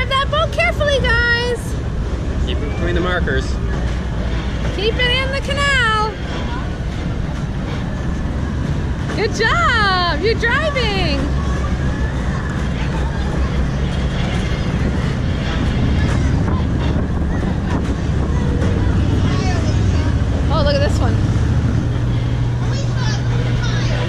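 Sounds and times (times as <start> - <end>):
crowd chatter: 0.0 - 24.0
ride machinery drone: 0.0 - 24.0.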